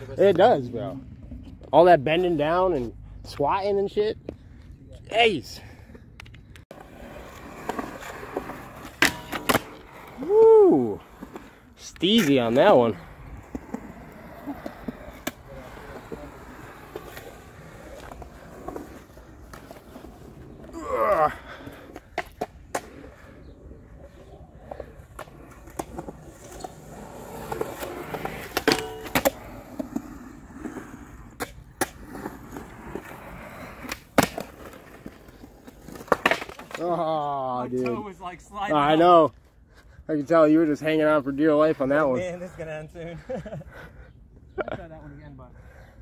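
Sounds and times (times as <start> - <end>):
skateboard wheels rolling on concrete: 0.0 - 46.0
skateboard hitting metal rail: 28.6 - 29.4
skateboard clacks: 35.7 - 37.0.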